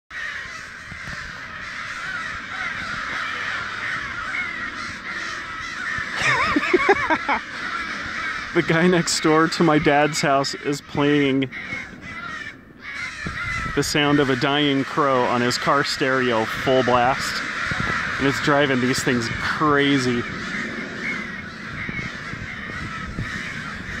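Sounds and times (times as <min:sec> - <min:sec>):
crows cawing: 0:00.1 - 0:24.0
recorded crow distress call: 0:00.1 - 0:24.0.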